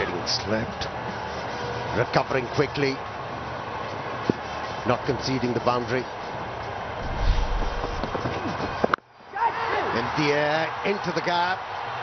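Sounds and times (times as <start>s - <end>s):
low rumble: 7.0s - 8.2s.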